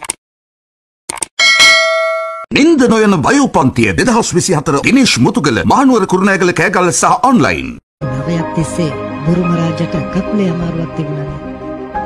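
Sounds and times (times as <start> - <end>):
notification bell ding: 1.4 - 2.5.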